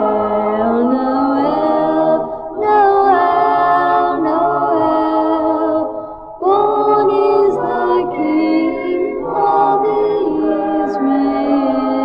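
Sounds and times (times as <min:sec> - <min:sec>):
choir singing held chords: 0:00.0 - 0:12.0.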